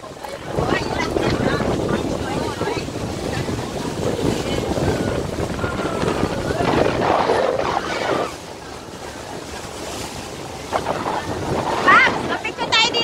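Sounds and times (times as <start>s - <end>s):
water rushing along hull: 0.0s - 13.0s
wind buffeting microphone: 0.0s - 13.0s
people talking: 0.1s - 8.4s, 11.8s - 13.0s.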